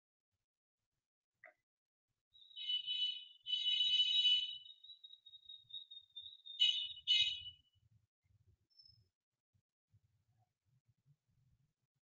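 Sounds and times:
high-pitched chirp: 2.4s - 7.5s.

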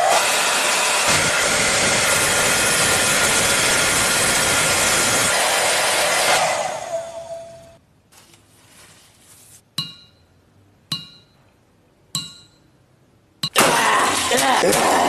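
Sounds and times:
hair dryer blowing: 0.0s - 7.5s
fan winding down whine: 0.0s - 7.8s.

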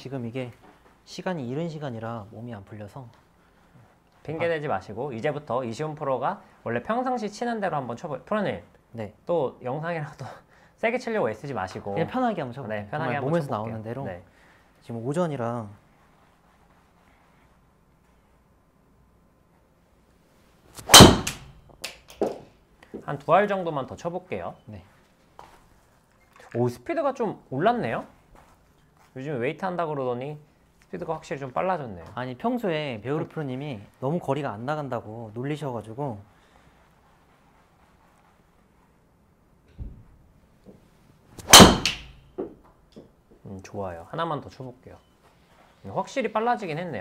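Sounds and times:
golf club striking ball: 20.8s - 21.6s, 41.4s - 42.2s
soft knock: 39.7s - 40.1s
faint thud: 39.8s - 40.1s.

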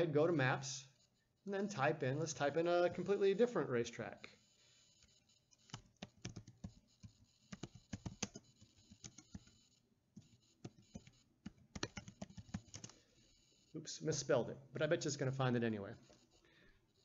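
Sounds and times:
typing on computer keyboard: 5.5s - 9.6s, 10.2s - 13.0s.

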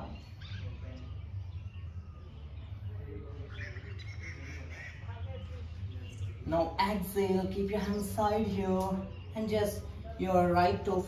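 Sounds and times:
birds chirping: 0.0s - 11.0s
low background hum: 0.0s - 11.0s.

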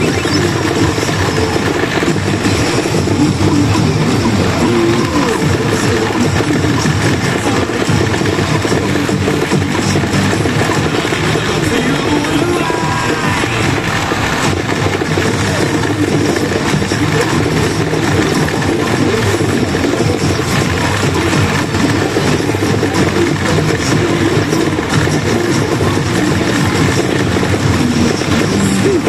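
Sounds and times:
pachinko machine music and effects: 0.0s - 29.0s
pachinko parlor din: 0.0s - 29.0s.

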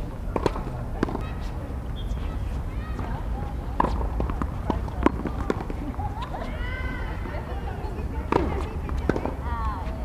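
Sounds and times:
rackets hitting tennis ball: 0.0s - 10.0s.

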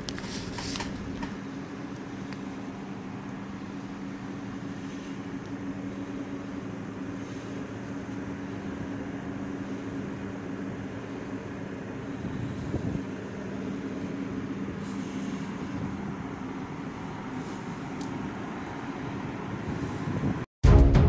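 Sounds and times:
ship machinery droning: 0.0s - 20.4s.

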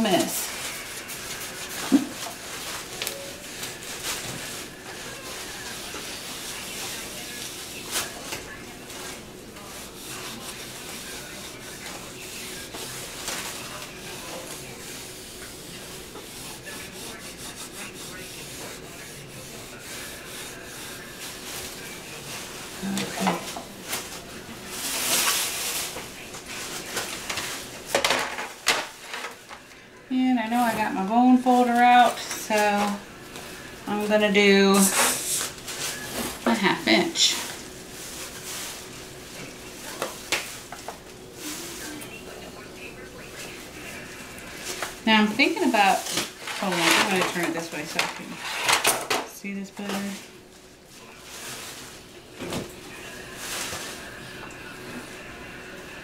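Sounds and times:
wipe scrubbing a tabletop: 8.9s - 22.9s
person speaking: 22.8s - 23.7s.

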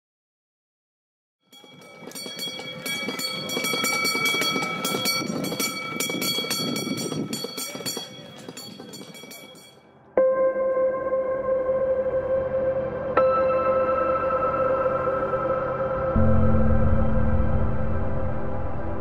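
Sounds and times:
hooves and wheels clattering: 1.5s - 9.8s
ringing tones: 1.5s - 9.8s
ambient music sustained note: 9.8s - 19.0s.

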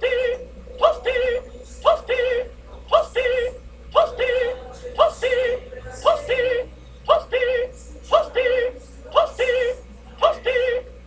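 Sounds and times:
synthetic voice-like warbling: 0.0s - 11.0s.

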